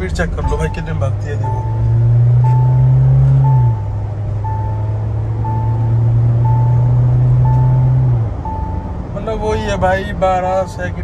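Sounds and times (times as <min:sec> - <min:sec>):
car engine accelerating: 0:00.0 - 0:09.2
seatbelt reminder chime beeping: 0:00.4 - 0:08.8.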